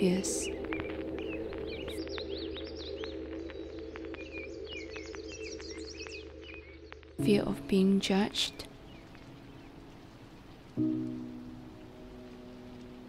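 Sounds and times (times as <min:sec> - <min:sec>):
ambient music sustained chords: 0:00.0 - 0:13.0
bird chirps: 0:00.1 - 0:07.0, 0:08.4 - 0:13.0.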